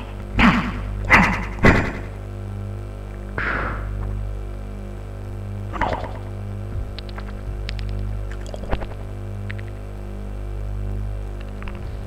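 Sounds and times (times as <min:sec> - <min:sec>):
steady low electronic hum: 0:00.0 - 0:12.0
sharp electronic hits: 0:03.4 - 0:03.9, 0:05.7 - 0:06.4.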